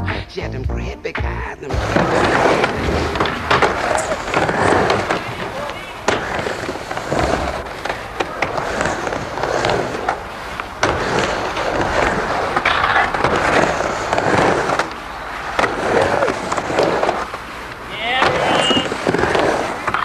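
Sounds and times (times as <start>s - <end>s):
skateboard wheels rolling on wood: 1.6s - 20.0s
skateboard clacking on coping: 1.7s - 20.0s.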